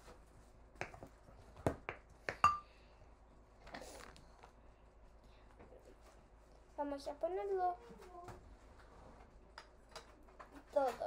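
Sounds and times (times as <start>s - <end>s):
glass jar taps and clicks: 2.3s - 2.6s.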